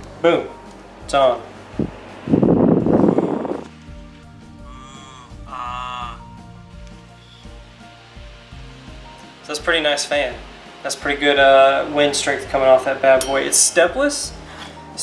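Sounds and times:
fan airflow buffeting microphone: 0.0 - 4.7, 6.2 - 15.0
background music with held notes: 0.0 - 15.0.

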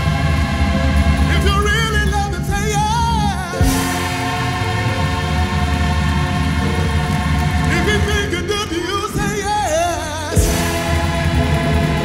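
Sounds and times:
gospel choir with band on vinyl: 0.0 - 12.0.

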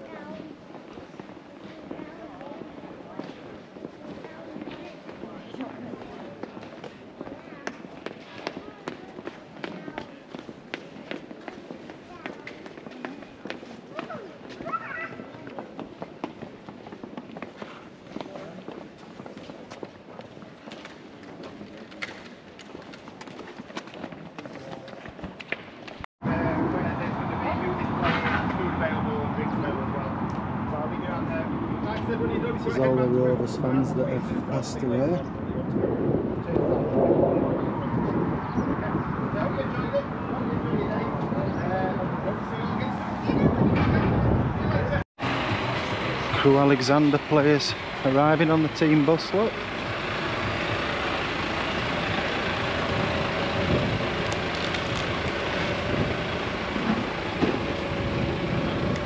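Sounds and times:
indistinct talk: 0.0 - 16.1
steady outdoor noise: 0.0 - 59.0
echoing footsteps: 0.3 - 26.1.

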